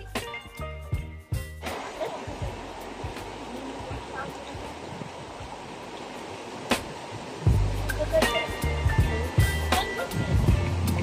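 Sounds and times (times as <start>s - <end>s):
river rushing over stones: 1.6s - 11.0s.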